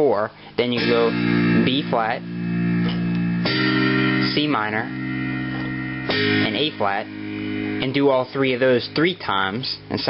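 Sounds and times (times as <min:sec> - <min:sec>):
electronic keyboard chords: 0:00.6 - 0:10.0.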